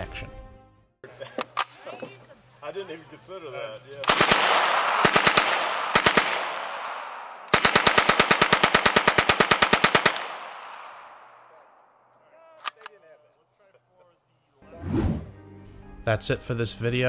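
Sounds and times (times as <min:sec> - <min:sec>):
submachine gun firing bursts: 0:04.0 - 0:11.1.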